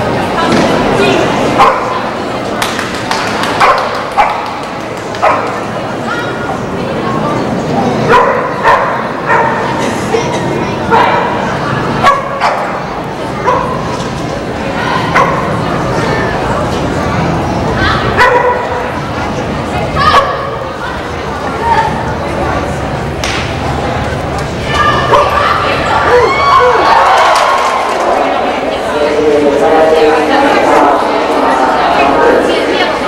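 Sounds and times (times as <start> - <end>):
dog barking: 1.6 - 2.0, 3.6 - 4.4, 5.2 - 5.6, 8.1 - 9.7, 12.0 - 12.7, 13.4 - 13.8, 18.2 - 18.8.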